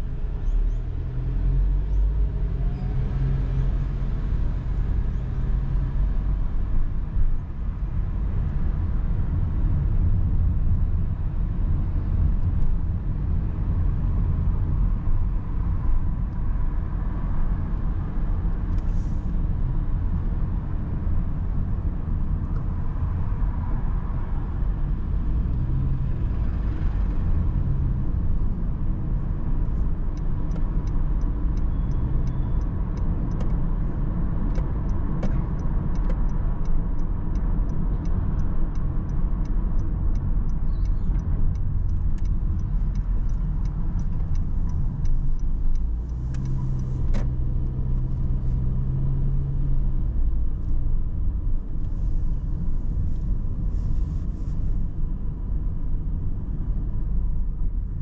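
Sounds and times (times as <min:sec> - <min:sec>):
engine and tyre rumble: 0:00.0 - 0:58.0.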